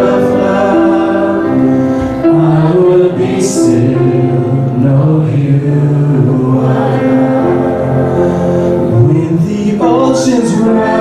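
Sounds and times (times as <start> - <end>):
live worship band playing: 0.0 - 11.0.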